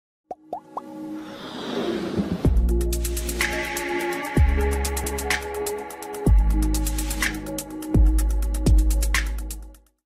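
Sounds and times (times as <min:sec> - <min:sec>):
cartoon pop blips: 0:00.3 - 0:00.9.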